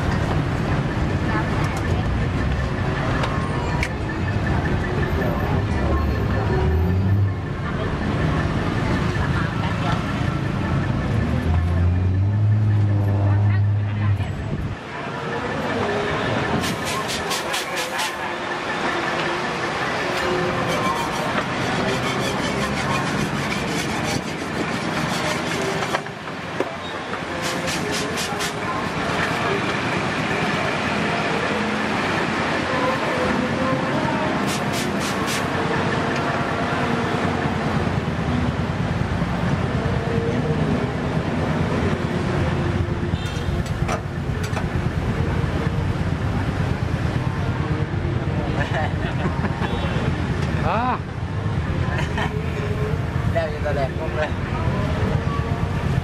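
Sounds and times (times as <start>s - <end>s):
road traffic: 0.0s - 56.0s
chatter of voices: 0.9s - 37.6s, 46.9s - 56.0s.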